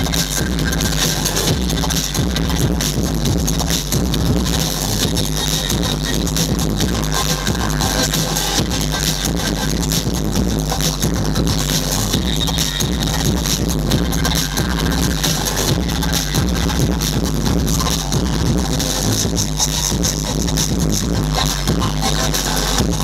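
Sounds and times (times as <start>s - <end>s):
breakbeat electronic dance music: 0.0s - 23.0s.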